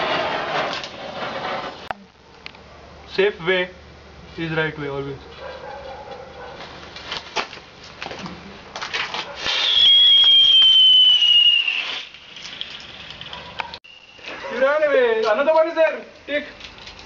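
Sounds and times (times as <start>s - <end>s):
firecracker cracks: 8.9s - 14.6s
firecracker hissing whistle: 9.4s - 13.2s, 13.8s - 14.6s
firecracker sputtering: 9.4s - 15.2s.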